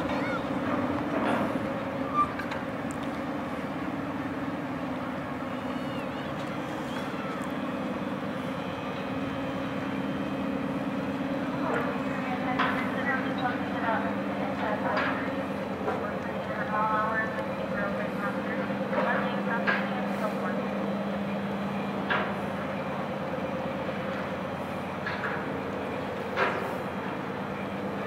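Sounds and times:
boat engines humming: 0:00.0 - 0:28.0
people talking: 0:11.5 - 0:20.7.

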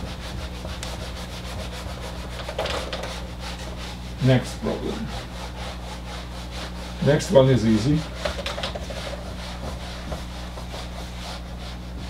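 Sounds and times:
eraser scrubbing whiteboard: 0:00.0 - 0:12.0.

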